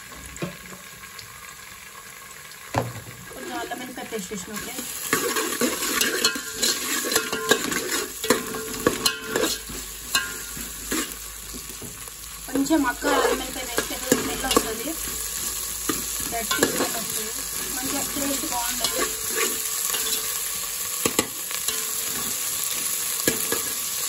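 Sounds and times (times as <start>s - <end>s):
vegetables sizzling in hot oil: 0.0s - 24.0s
knock: 2.7s - 3.2s
ladle scraping metal pot: 5.0s - 11.2s, 12.9s - 20.4s.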